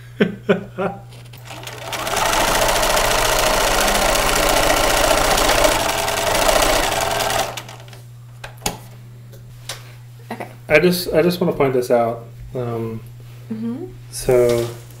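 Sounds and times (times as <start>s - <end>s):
electric sewing machine stitching: 1.2s - 8.0s.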